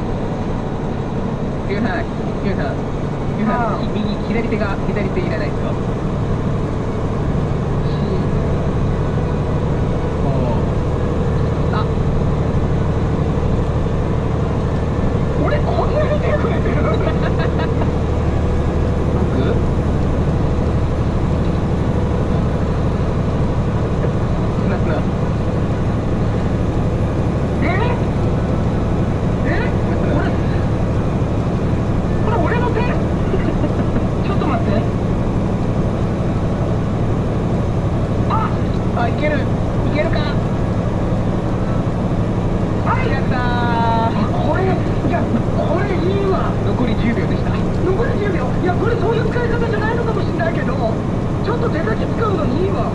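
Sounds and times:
diesel engine drone: 0.0 - 52.9.

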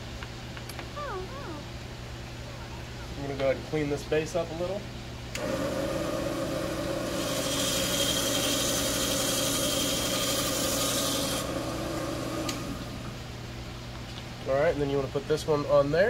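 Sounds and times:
small power tool motor running: 5.4 - 13.2
tool grinding rock: 7.1 - 11.4.

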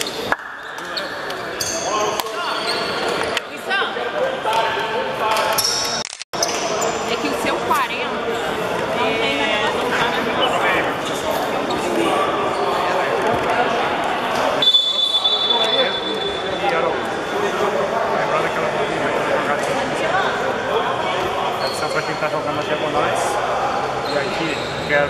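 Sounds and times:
echoing chatter of voices: 0.0 - 25.0.

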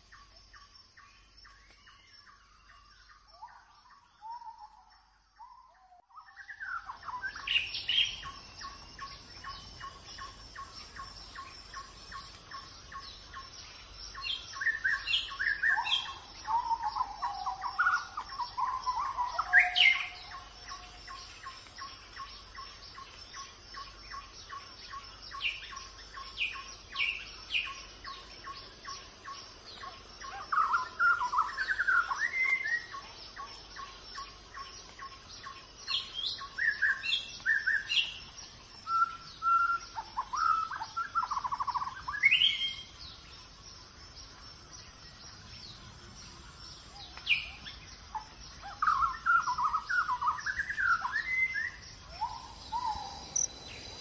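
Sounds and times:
wild birds chirping and calling: 0.0 - 54.0.

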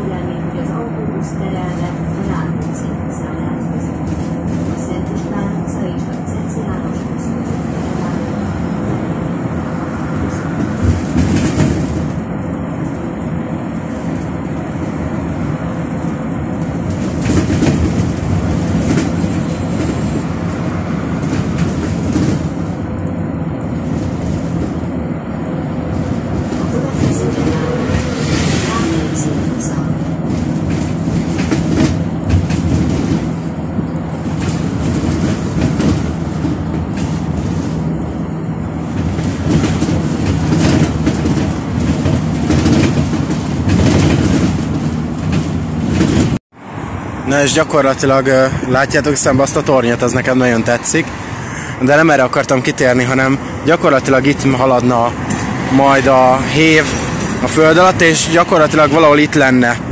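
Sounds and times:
bus engine and road noise: 0.0 - 59.9.

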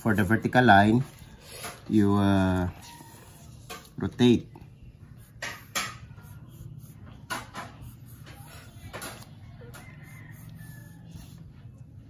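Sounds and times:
pencil scratching on paper: 2.7 - 4.2, 5.0 - 11.8.

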